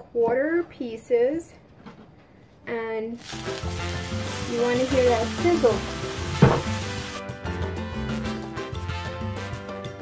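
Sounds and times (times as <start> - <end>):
sausages sizzling in a frying pan: 3.2 - 7.2
background music: 3.2 - 10.0
sharp thump: 6.4 - 6.8.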